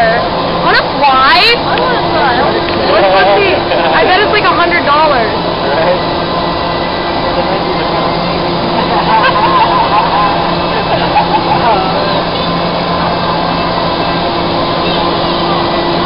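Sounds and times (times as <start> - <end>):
low hum: 0.0 - 16.0
voices: 0.0 - 16.0
wind tunnel fans rushing air: 0.0 - 16.0.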